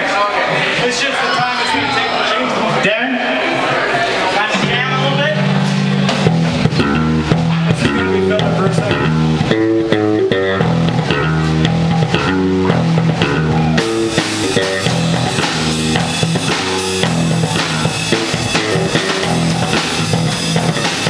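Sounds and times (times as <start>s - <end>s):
bass guitar: 2.6s - 21.0s
electric guitar: 4.5s - 21.0s
drum kit and cymbals: 4.6s - 21.0s.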